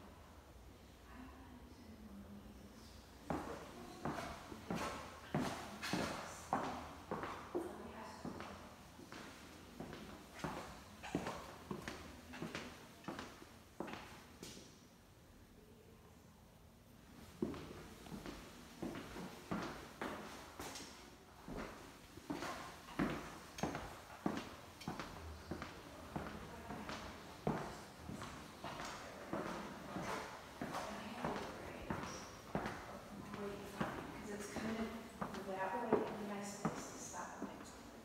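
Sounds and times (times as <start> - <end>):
footsteps on tile floor: 3.3 - 14.6, 17.4 - 37.8.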